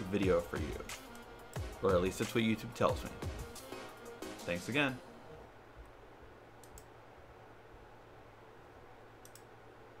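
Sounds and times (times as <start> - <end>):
faint sharp clicks: 9.2 - 9.5.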